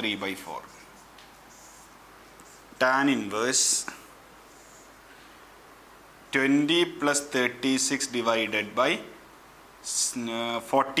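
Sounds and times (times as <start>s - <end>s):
low room hiss: 0.0s - 11.0s
whiteboard marker scratch: 0.6s - 2.7s.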